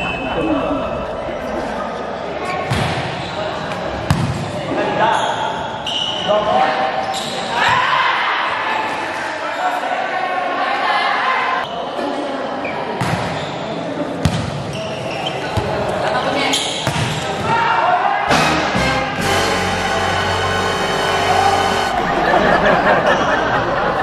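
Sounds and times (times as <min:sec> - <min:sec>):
players shouting: 0:17.2 - 0:22.4.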